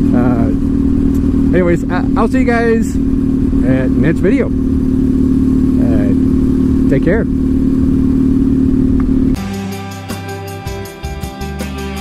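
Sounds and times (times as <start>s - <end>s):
motorcycle engine running: 0.0s - 12.0s
guitar music: 9.4s - 12.0s.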